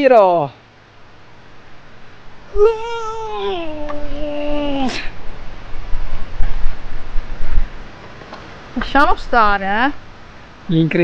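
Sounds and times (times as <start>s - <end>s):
low rumbling noise: 0.7s - 11.0s
person wailing: 2.5s - 5.2s.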